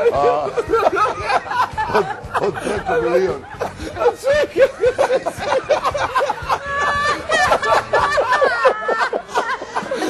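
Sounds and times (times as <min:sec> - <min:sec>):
woman laughing hard: 0:00.0 - 0:10.0.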